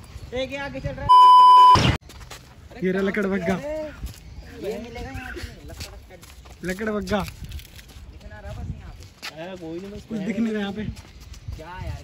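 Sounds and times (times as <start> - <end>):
loud electronic beep: 1.1 - 2.0.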